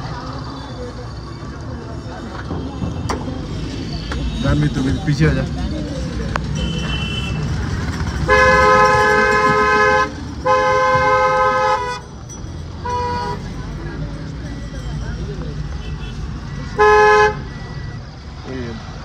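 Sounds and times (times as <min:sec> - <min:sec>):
low rumble of road vehicles: 0:00.0 - 0:19.0
two-note vehicle horn honking: 0:08.3 - 0:12.0.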